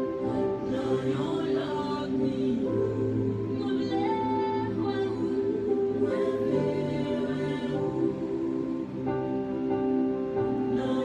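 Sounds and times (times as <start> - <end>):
slow choral worship music: 0.0 - 11.0.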